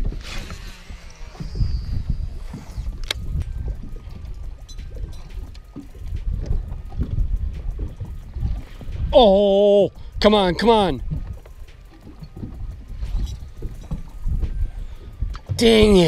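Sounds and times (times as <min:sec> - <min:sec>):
fishing reel whizzing: 0:00.0 - 0:10.2, 0:10.8 - 0:16.0
fishing reel cranking: 0:00.0 - 0:16.0
wind buffeting microphone: 0:00.0 - 0:16.0.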